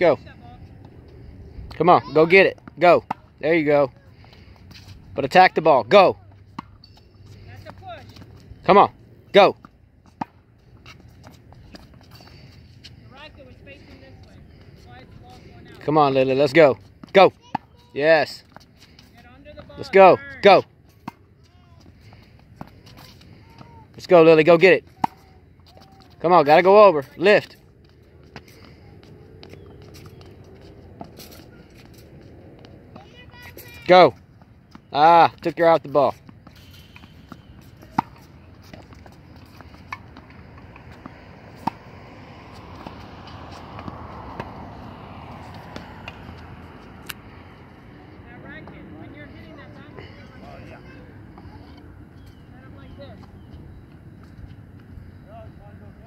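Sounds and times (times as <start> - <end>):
outdoor background: 0.0 - 56.0
tennis balls hit by rackets: 5.5 - 8.6, 9.6 - 14.5, 16.4 - 17.9, 18.5 - 33.7, 34.4 - 54.4
tennis racket hitting ball: 36.3 - 47.3
faint distant voices: 47.6 - 54.0.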